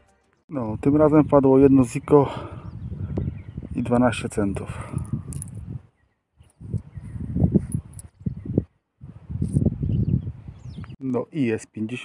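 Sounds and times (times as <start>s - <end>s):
wind buffeting microphone: 0.7s - 11.0s.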